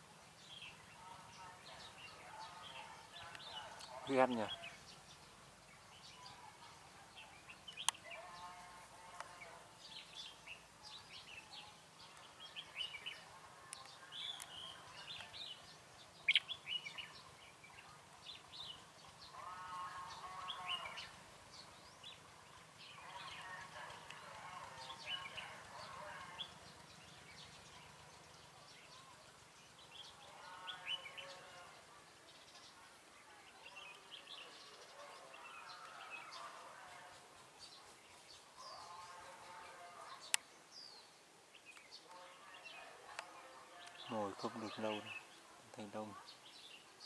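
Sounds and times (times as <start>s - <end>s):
birds calling and singing: 0.0s - 47.0s
low drawn-out bird calls: 7.2s - 32.9s.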